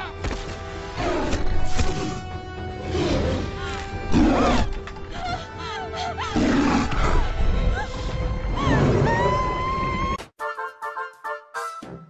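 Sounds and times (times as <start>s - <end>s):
film score music: 0.0s - 12.0s
bear roaring and growling: 0.9s - 4.9s, 6.3s - 10.0s.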